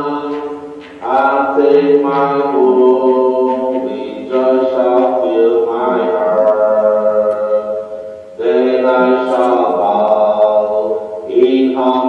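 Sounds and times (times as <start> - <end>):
voices singing a hymn: 0.0 - 12.0.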